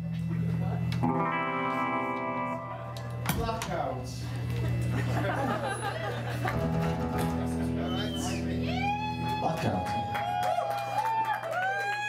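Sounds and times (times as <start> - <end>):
bass sustained chords: 0.0 - 10.4.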